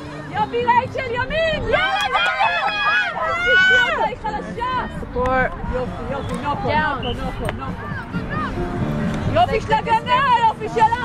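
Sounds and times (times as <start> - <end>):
high voices shouting and cheering: 0.0 - 11.0.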